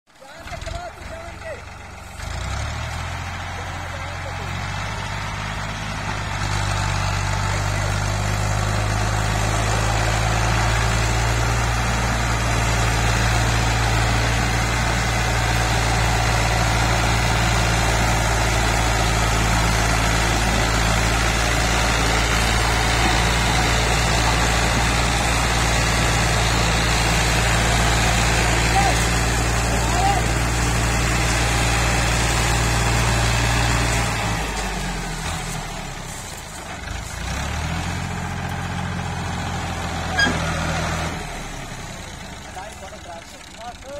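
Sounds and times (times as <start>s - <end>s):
tractor diesel engine under load: 0.1s - 43.9s.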